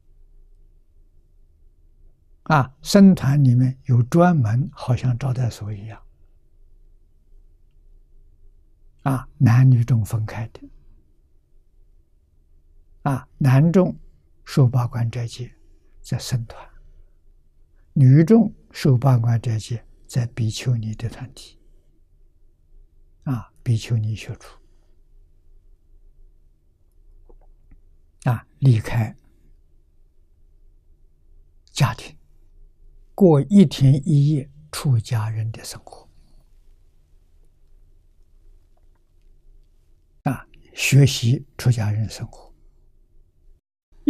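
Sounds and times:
faint low hum: 0.0 - 44.0
elderly man speaking: 2.5 - 6.0, 9.0 - 10.7, 13.0 - 16.8, 17.9 - 21.6, 23.2 - 24.6, 28.2 - 29.2, 31.7 - 32.2, 33.2 - 36.1, 40.3 - 42.5.

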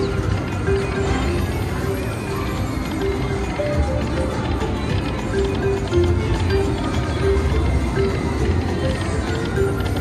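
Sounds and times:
slot machine bonus music: 0.0 - 10.0
slot machine reels spinning: 0.0 - 10.0.

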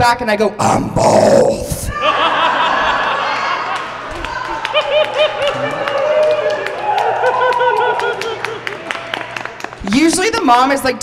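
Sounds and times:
audience laughing: 1.9 - 6.0, 7.2 - 9.3
scattered clapping: 3.7 - 10.5.

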